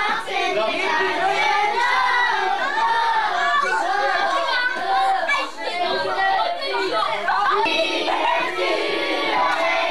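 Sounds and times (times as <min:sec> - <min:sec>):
children talking at once: 0:00.8 - 0:09.1.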